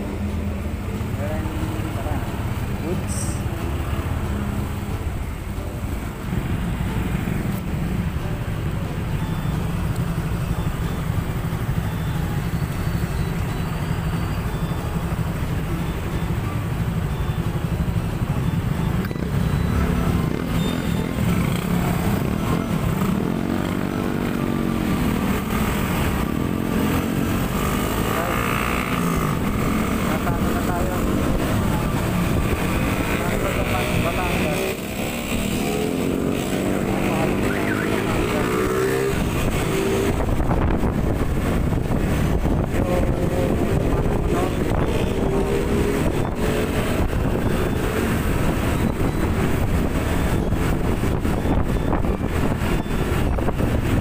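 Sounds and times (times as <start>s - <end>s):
motorcycles in traffic: 0.0s - 54.0s.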